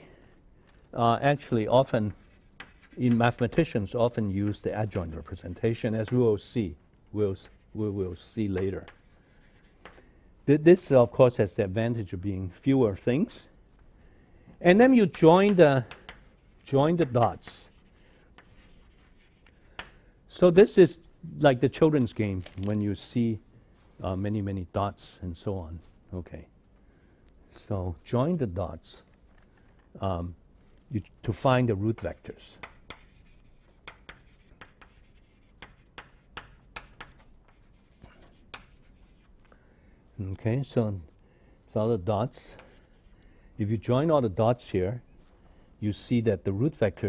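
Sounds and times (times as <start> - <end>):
chalk scratching on blackboard: 1.8 - 6.2, 7.3 - 10.0, 15.1 - 19.9, 31.8 - 39.4, 42.5 - 43.2
chalk tapping: 2.0 - 3.8, 7.4 - 10.1, 15.0 - 20.0, 31.9 - 39.4.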